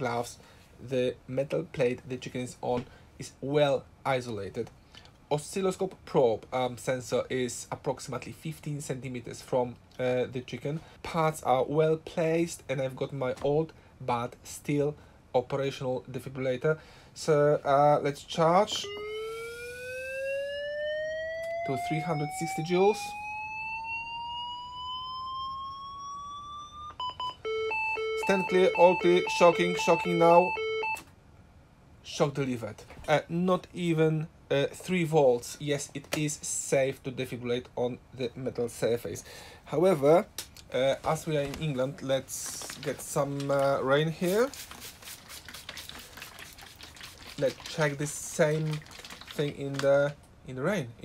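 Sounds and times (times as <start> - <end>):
defibrillator charging tone: 18.8 - 31.1
spray bottle spritzing water: 44.2 - 49.5.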